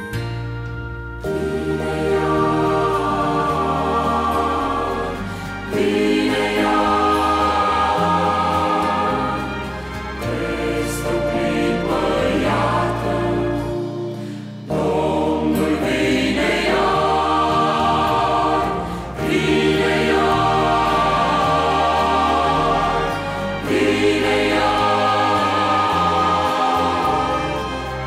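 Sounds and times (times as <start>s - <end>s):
mixed choir singing: 1.2s - 28.0s.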